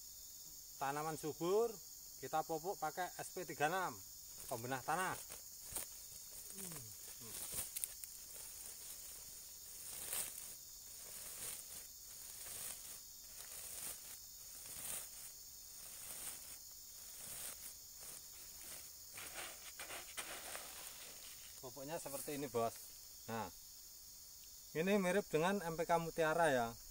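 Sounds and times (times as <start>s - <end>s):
high-pitched insect drone: 0.0s - 26.9s
plastic sack rustling: 4.4s - 21.6s.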